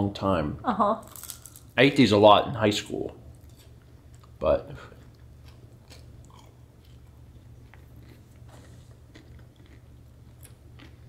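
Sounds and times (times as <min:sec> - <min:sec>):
steady low hum: 0:00.0 - 0:11.0
person chewing food: 0:03.4 - 0:11.0.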